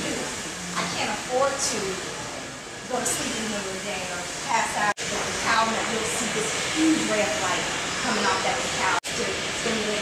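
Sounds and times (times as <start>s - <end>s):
people talking in a class: 0.0s - 10.0s
steady background hiss: 0.0s - 10.0s.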